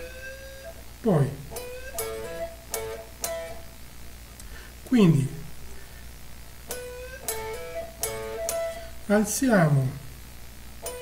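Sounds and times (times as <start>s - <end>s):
electric guitar note: 0.0s - 3.8s, 6.6s - 10.1s, 10.8s - 11.0s
person speaking: 1.0s - 1.6s, 4.8s - 5.8s, 9.0s - 10.0s.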